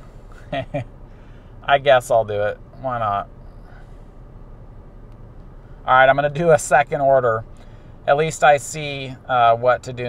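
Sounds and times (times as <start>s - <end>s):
car cabin hum: 0.0s - 10.0s
man speaking: 1.6s - 3.3s, 5.9s - 7.4s, 8.1s - 10.0s.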